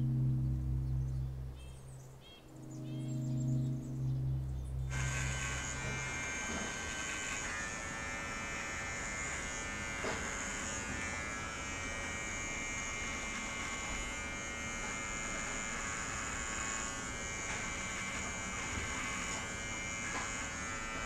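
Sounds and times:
electric hair clippers buzzing: 0:04.9 - 0:21.0.

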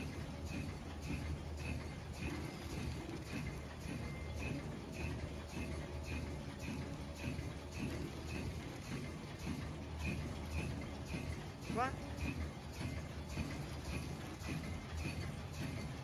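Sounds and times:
machine low hum: 0:00.0 - 0:16.0.

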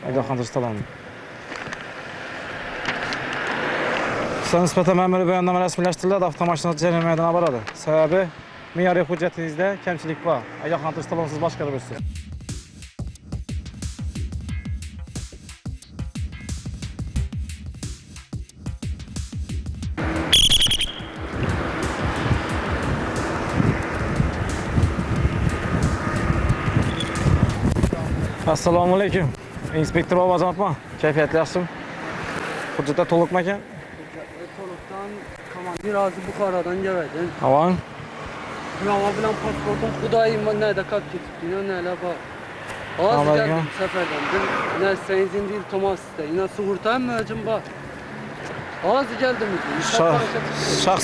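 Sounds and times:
vehicle passing on road: 0:00.0 - 0:12.0, 0:20.0 - 0:51.0
street traffic noise: 0:00.0 - 0:51.0.

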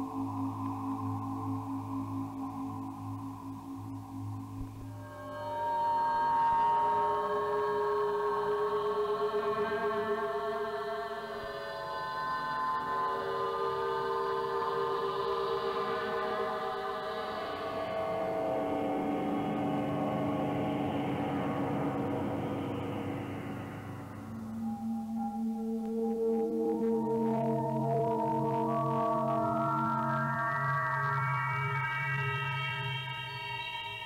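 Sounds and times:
electronic drone of held tones: 0:00.0 - 0:34.0.

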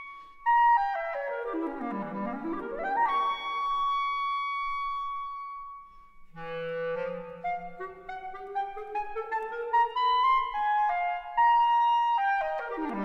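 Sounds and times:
solo clarinet: 0:00.0 - 0:13.0.

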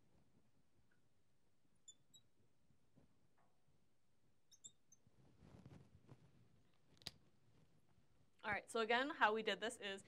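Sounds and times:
marker squeaking on glass: 0:01.8 - 0:02.3, 0:04.5 - 0:05.1.

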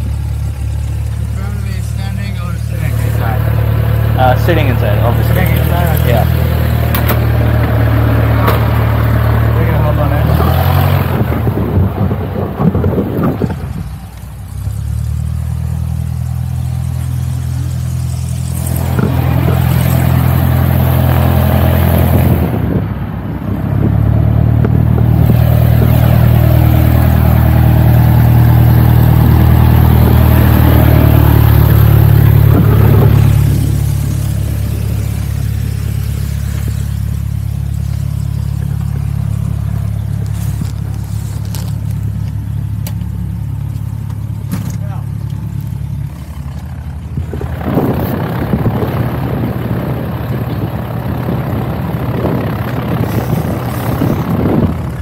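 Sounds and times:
engine drone: 0:00.0 - 0:55.0.

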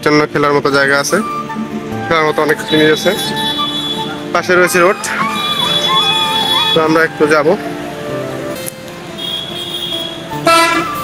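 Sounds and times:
vehicle horns: 0:02.5 - 0:07.0, 0:09.1 - 0:11.0.

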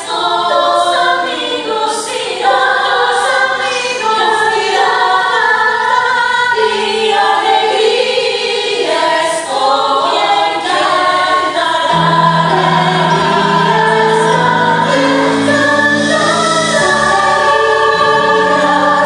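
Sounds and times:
cast singing in harmony: 0:00.0 - 0:19.0.

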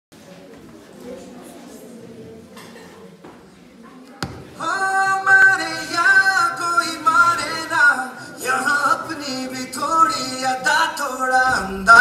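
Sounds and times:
faint background voices: 0:00.2 - 0:12.0.

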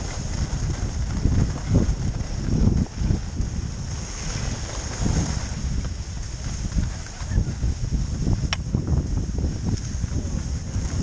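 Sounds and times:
skis sliding over snow: 0:00.0 - 0:11.0
wind buffeting microphone: 0:00.0 - 0:11.0.

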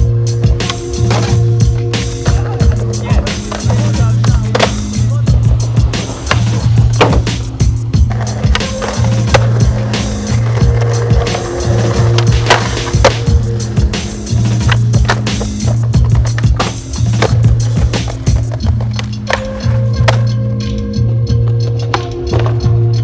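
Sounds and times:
music with steady bass line: 0:00.0 - 0:23.0
skateboard wheels rolling: 0:00.0 - 0:23.0.

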